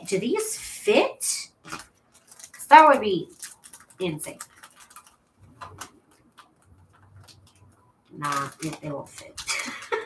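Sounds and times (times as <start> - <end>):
cellophane bag crinkling: 1.6 - 10.0.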